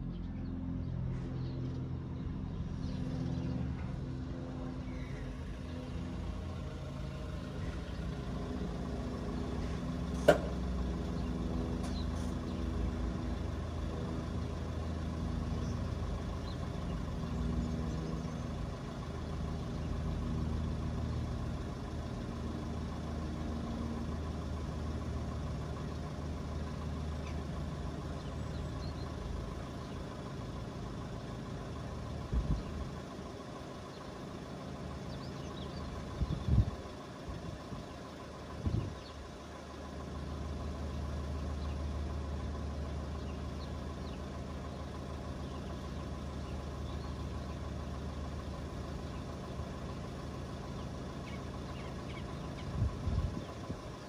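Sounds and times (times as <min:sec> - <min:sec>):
vehicle engine idling: 0:00.0 - 0:54.0.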